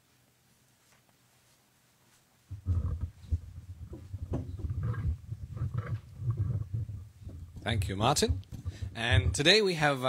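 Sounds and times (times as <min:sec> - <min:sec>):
microphone handling noise: 0:02.5 - 0:09.5.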